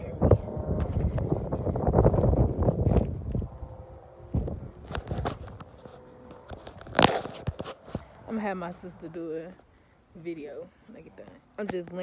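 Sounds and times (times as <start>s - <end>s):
phone microphone handling noise: 0.0s - 3.6s, 4.3s - 8.4s
low rumble: 0.0s - 7.1s
knocks and rustles: 4.4s - 8.3s.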